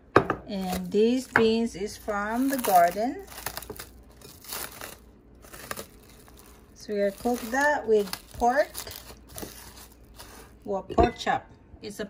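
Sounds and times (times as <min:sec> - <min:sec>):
plastic cling wrap crinkling: 0:00.5 - 0:10.7.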